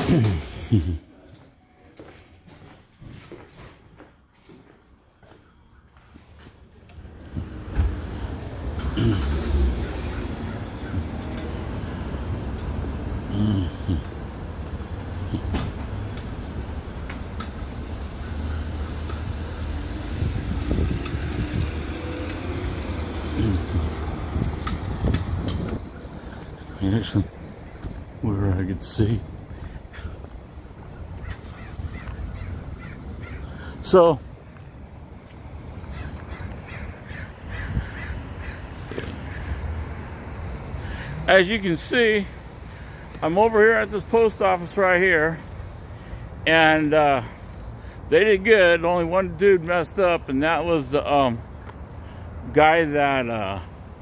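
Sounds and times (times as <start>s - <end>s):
low traffic rumble: 0.0s - 54.0s
passing vehicle engine hum: 6.8s - 46.4s
crows cawing: 9.8s - 12.0s, 27.4s - 28.1s, 29.4s - 33.8s, 35.8s - 39.8s.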